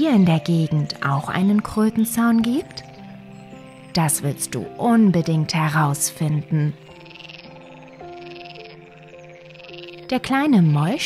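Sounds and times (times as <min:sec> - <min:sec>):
frogs trilling: 0:00.0 - 0:11.0
soft background music: 0:00.0 - 0:11.0.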